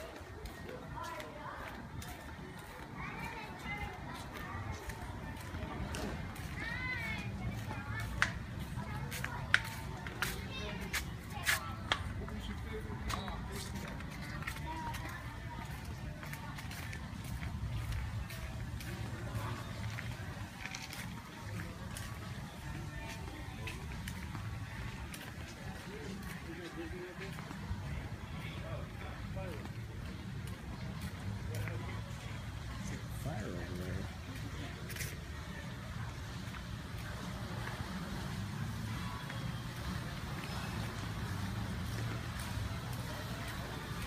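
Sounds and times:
faint distant voices: 0.0 - 44.0.

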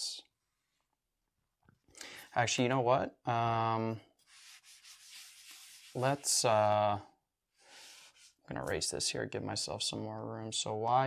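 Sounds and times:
eraser scrubbing whiteboard: 4.2 - 6.4, 7.7 - 8.7.

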